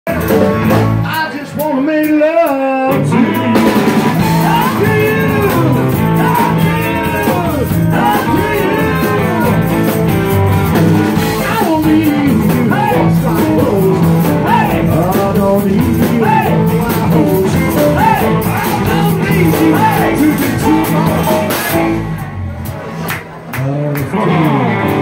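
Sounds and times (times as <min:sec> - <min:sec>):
drums: 0:00.0 - 0:25.0
man singing: 0:00.1 - 0:10.1, 0:11.0 - 0:22.0
electric guitar: 0:00.1 - 0:25.0.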